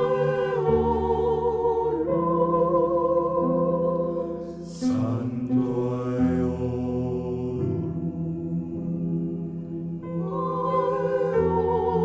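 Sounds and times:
voices chanting long notes: 0.0s - 12.0s.

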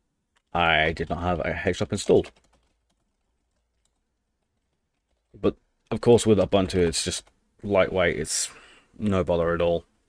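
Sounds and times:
computer keyboard keystrokes: 2.0s - 5.3s.

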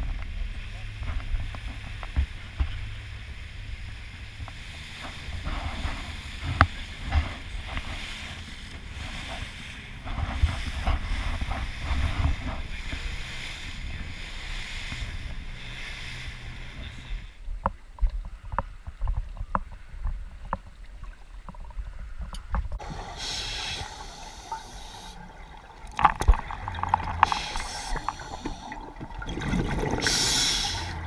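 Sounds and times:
water rushing past boat hull: 0.0s - 17.4s, 22.8s - 31.0s
deep engine rumble: 0.0s - 18.5s, 21.9s - 31.0s
wind buffeting microphone: 0.0s - 20.6s.

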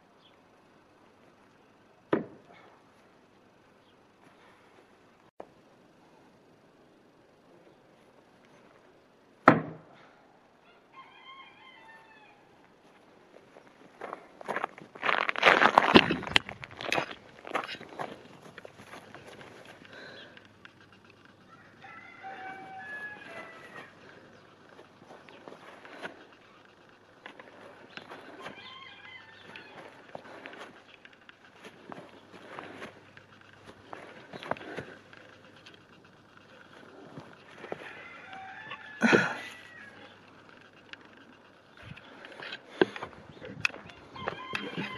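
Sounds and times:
blade striking wooden target: 9.4s - 9.9s
rustling and handling noise: 12.6s - 44.9s
chickens clucking: 31.9s - 44.9s.

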